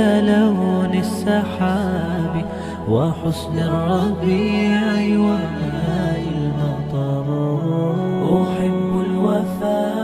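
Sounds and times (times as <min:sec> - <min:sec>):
vocal drone: 0:00.0 - 0:10.0.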